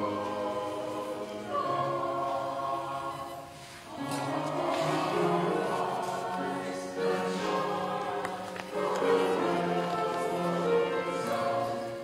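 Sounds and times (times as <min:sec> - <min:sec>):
choir singing church music: 0:00.0 - 0:12.0.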